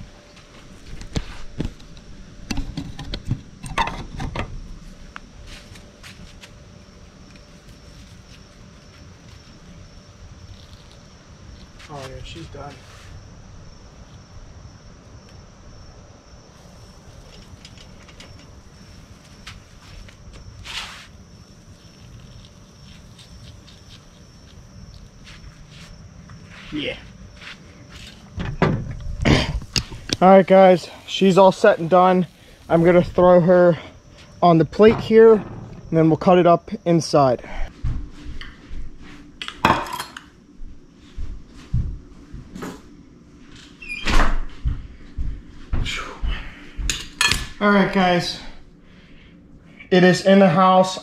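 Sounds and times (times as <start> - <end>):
high-pitched insect drone: 3.8 - 37.7.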